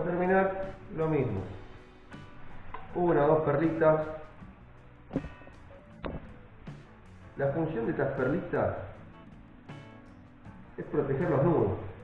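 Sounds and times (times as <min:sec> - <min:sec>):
faint concert music from television: 0:00.0 - 0:12.0.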